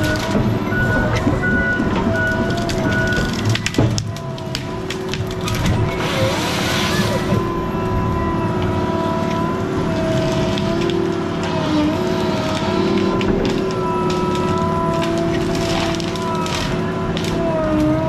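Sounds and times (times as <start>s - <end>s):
diesel engine rumbling: 0.0s - 18.0s
hydraulic whine: 0.0s - 18.0s
wood cracking: 0.0s - 18.0s.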